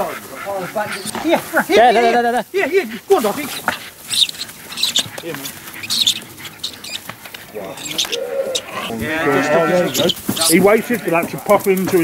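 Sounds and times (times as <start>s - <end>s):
men calling and whooping: 0.0s - 12.0s
short high-pitched squeaks: 4.1s - 7.0s, 7.7s - 8.9s.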